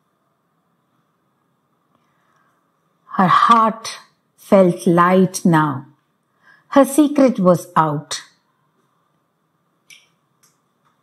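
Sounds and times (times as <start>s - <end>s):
faint room hiss: 0.0s - 11.0s.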